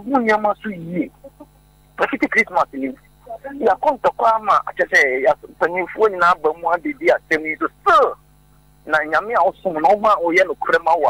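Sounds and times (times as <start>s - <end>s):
person talking: 0.0s - 8.2s, 8.9s - 11.0s
electrical mains hum: 0.0s - 11.0s.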